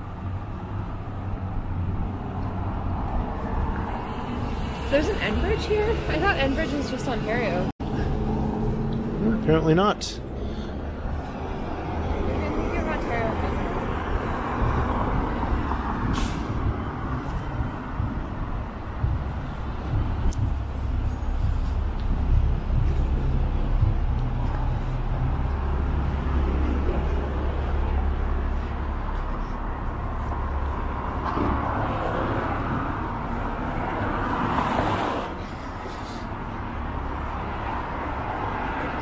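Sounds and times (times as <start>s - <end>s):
street traffic rumble: 0.0s - 39.0s
short sharp hiss: 16.1s - 16.5s.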